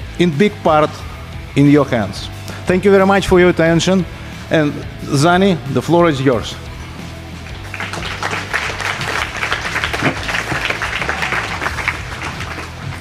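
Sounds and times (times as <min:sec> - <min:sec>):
low background music: 0:00.0 - 0:13.0
audience applauding: 0:07.5 - 0:13.0.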